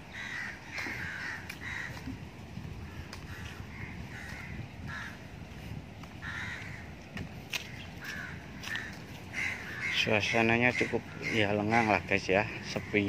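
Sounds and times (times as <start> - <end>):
bird giving harsh calls: 0.0 - 2.1, 7.7 - 13.0.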